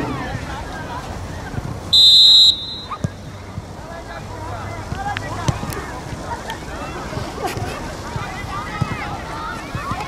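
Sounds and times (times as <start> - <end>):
referee's whistle blast: 1.9 - 3.0.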